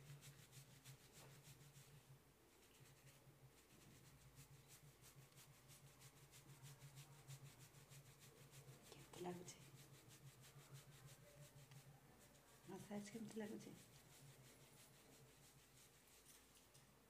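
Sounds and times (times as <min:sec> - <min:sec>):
fingertips rubbing through hair: 0:02.6 - 0:16.9.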